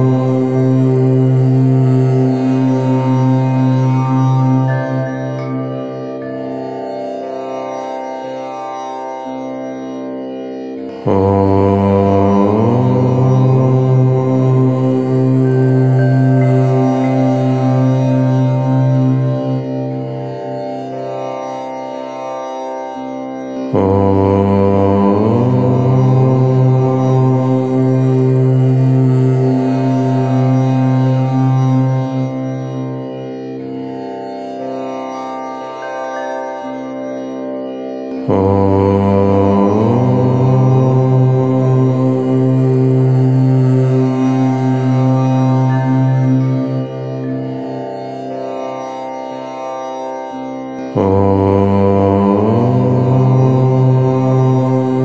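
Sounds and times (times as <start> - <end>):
person chanting low note: 0.0 - 6.6, 11.0 - 19.8, 23.7 - 32.4, 38.2 - 47.9, 50.8 - 55.0.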